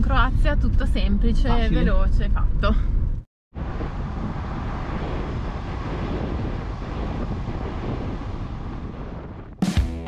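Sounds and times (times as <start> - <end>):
road and engine rumble: 0.0 - 9.7
wind rushing over microphone: 3.0 - 9.6.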